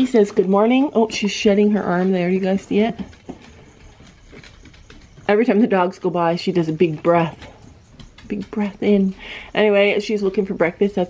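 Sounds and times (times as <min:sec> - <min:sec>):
dogs' footfalls: 0:00.0 - 0:11.0.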